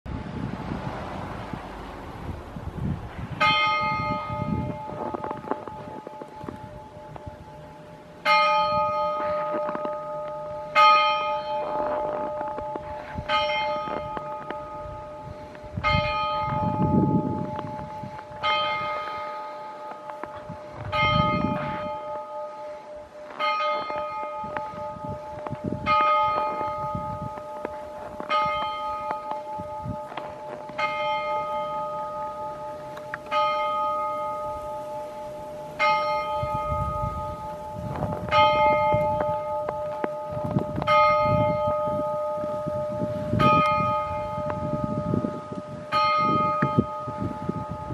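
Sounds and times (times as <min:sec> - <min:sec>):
church bell tolling: 0:03.1 - 0:47.9.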